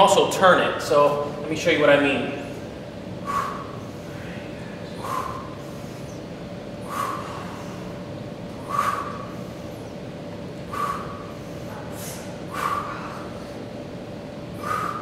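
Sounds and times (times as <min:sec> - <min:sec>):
background hum: 0:00.0 - 0:15.0.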